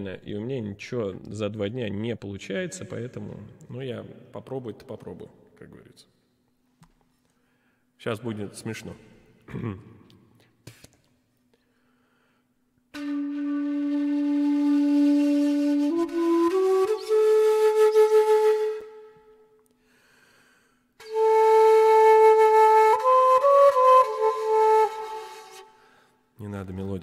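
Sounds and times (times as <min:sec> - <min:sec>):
breathy bamboo flute: 0:12.9 - 0:19.5, 0:21.0 - 0:26.2.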